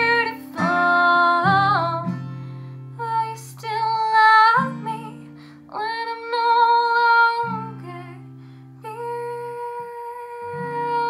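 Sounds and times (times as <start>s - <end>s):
young woman singing: 0.0s - 2.3s, 2.9s - 11.0s
acoustic guitar strummed: 0.0s - 5.7s.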